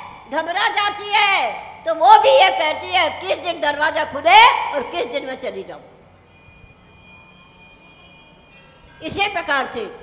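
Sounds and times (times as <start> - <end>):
faint high bell-like ringing: 6.0 - 10.0.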